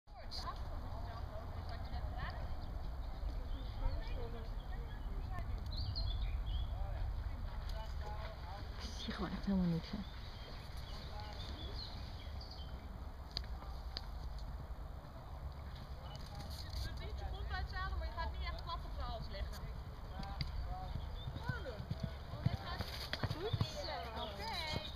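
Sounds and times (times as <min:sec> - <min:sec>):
steady low rumble: 0:00.6 - 0:16.1
hooves thudding on sand: 0:01.0 - 0:24.9
people talking: 0:06.8 - 0:10.1.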